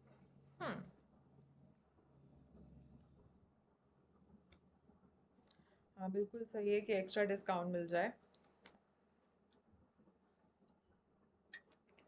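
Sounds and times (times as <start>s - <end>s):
faint small clicks: 4.5s - 4.7s, 5.4s - 5.7s, 8.2s - 9.7s, 11.5s - 12.0s.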